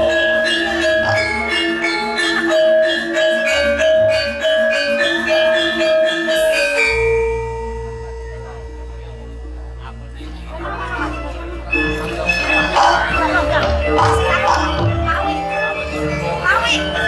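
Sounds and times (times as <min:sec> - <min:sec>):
gamelan metallophones playing: 0:00.0 - 0:17.0.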